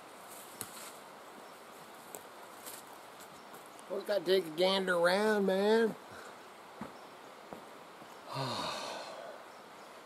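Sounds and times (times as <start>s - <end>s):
twigs crackling underfoot: 0.1s - 4.0s
footsteps through undergrowth: 0.2s - 3.9s.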